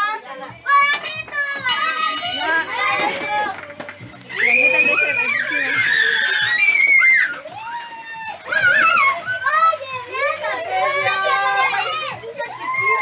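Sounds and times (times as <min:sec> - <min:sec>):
children shouting and shrieking: 0:00.6 - 0:13.0.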